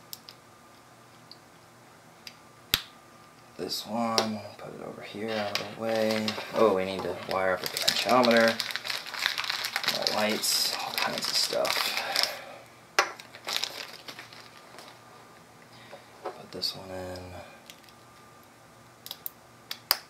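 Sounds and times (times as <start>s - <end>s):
paper packet crinkling: 5.2s - 12.5s, 13.1s - 15.1s.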